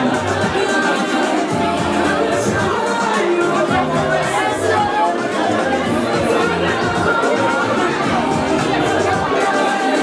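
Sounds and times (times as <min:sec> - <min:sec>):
dance music with bass line: 0:00.0 - 0:10.0
loud crowd chatter: 0:00.0 - 0:10.0.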